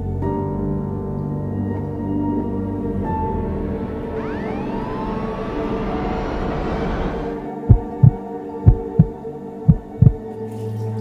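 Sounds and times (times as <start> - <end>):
dark ambient music: 0.0 - 11.0
heartbeat thumps: 7.7 - 10.2.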